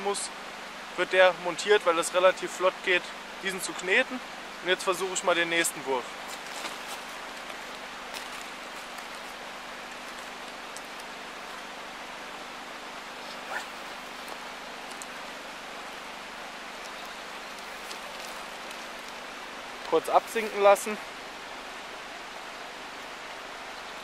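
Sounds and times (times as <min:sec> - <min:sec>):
water splashing: 0:06.2 - 0:20.8.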